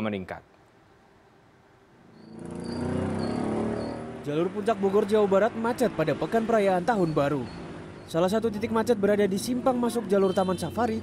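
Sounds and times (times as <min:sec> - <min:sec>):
car and motorcycle engines in traffic: 0:02.0 - 0:11.0.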